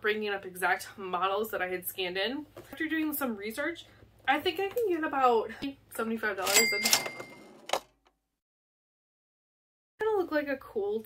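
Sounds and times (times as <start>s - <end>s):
cash register bell ring: 6.4s - 7.8s.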